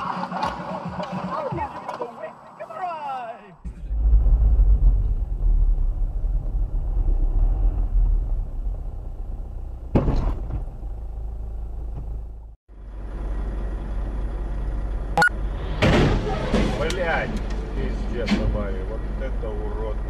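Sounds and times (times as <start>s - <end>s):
road noise: 0.0s - 20.0s
car engine rumble: 3.6s - 20.0s
sharp thump: 9.9s - 10.7s.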